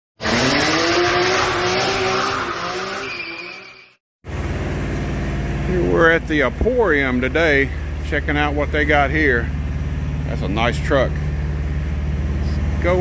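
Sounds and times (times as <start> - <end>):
racing car engine: 0.2 - 13.0.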